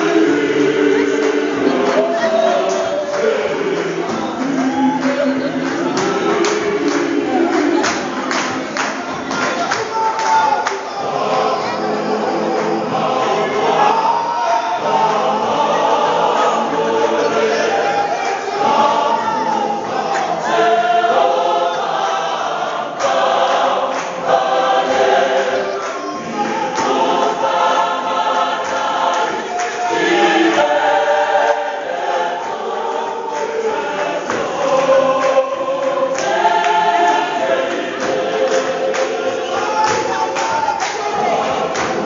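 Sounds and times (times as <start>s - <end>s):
gospel choir singing: 0.0s - 42.0s
hand claps: 1.2s - 11.0s, 23.0s - 27.5s, 28.6s - 30.6s, 31.9s - 42.0s.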